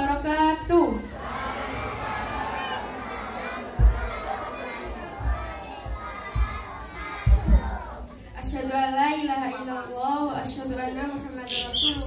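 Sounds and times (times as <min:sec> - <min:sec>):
children chattering and calling: 0:00.0 - 0:12.0
dull low thumps: 0:03.7 - 0:08.6.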